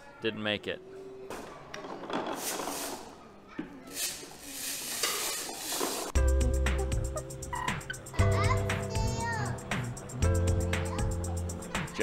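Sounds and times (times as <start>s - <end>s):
background music with strong bass: 6.2s - 12.0s.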